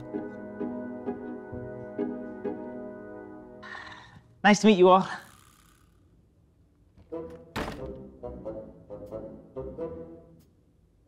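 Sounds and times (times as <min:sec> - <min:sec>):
wooden door slamming: 0:07.4 - 0:08.0.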